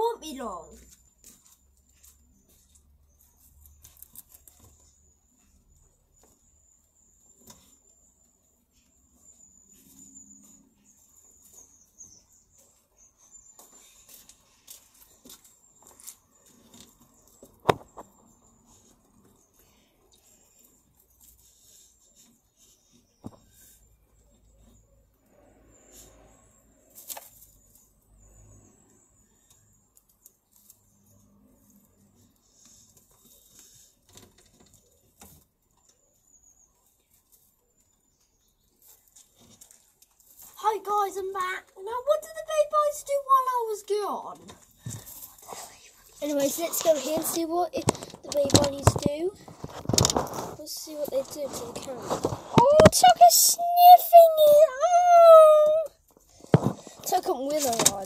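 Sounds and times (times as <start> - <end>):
rabbits rustling in straw: 30.4 - 41.1, 42.2 - 55.7.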